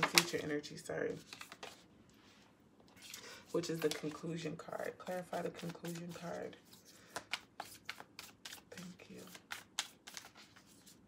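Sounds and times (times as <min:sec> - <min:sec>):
cards being shuffled: 0:01.2 - 0:01.8, 0:03.0 - 0:04.2, 0:05.0 - 0:11.0.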